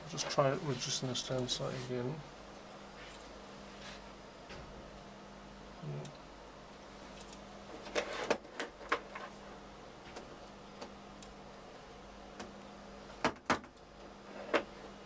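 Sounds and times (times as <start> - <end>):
low equipment hum: 0.0 - 15.0.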